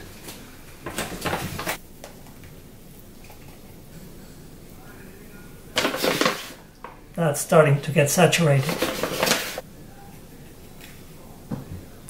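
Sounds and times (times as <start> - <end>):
plastic bag crinkling: 5.7 - 6.6, 8.3 - 9.6.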